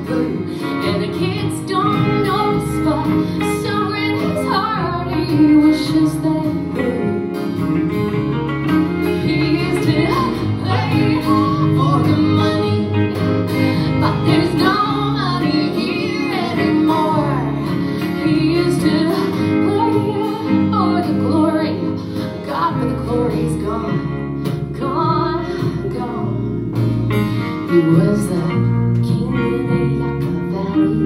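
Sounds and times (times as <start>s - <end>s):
electric guitar: 0.0s - 31.0s
upright double bass: 0.0s - 31.0s.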